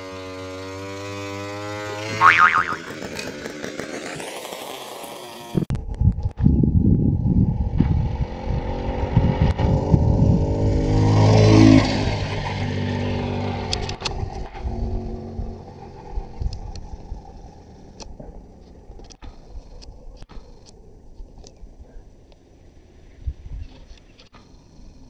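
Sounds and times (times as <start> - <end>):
motorized bicycle engine passing: 0.0 - 5.7, 6.5 - 21.0.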